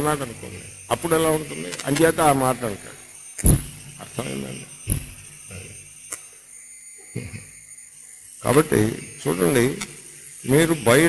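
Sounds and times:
high-pitched sound system whine: 0.0 - 6.3, 8.2 - 11.0.

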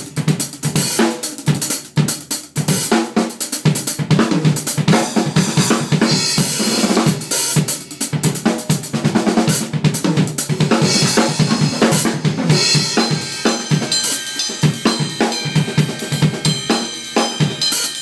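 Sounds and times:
fast drum kit solo: 0.0 - 18.0.

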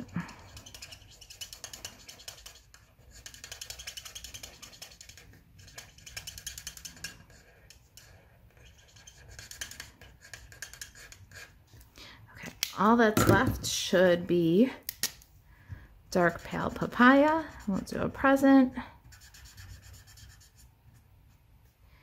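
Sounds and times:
marker scratching on cardstock: 0.0 - 11.6, 16.2 - 18.3, 19.0 - 21.4.

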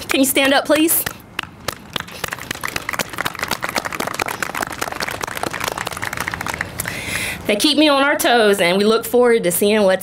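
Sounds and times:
audience applauding: 1.4 - 7.0.

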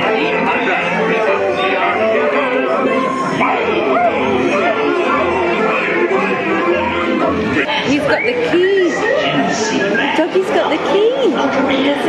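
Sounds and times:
background music: 0.0 - 12.0
recorded voices and chatter: 0.0 - 12.0.

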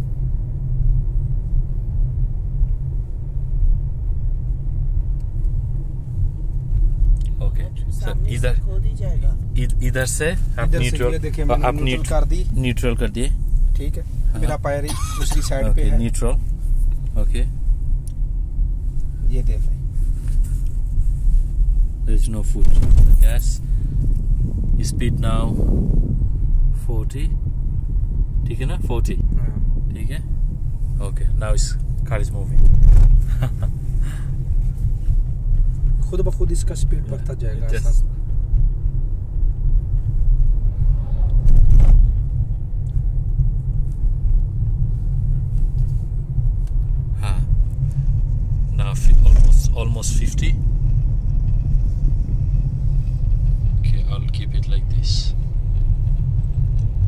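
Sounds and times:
car tyre and road noise: 0.0 - 57.0.

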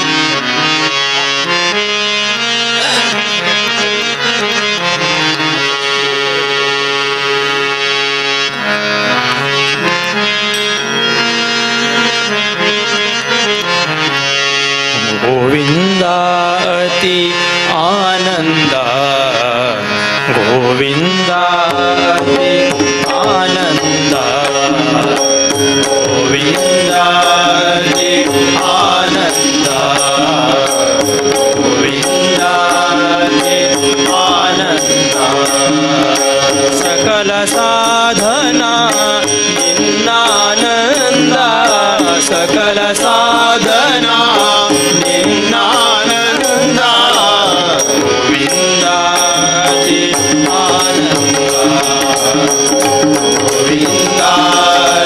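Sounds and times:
harmonium: 0.0 - 55.0
tabla: 0.0 - 55.0
person singing ornamented melody: 14.9 - 55.0.

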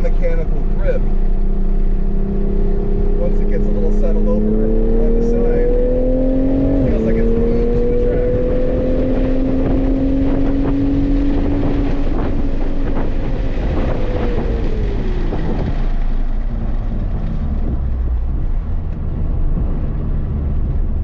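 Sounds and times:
car engine accelerating: 0.0 - 21.0.

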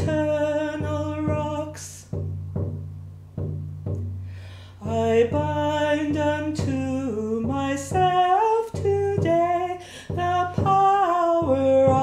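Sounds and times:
woman singing a hymn: 0.0 - 2.2, 4.8 - 12.0
low accompaniment: 0.0 - 12.0.

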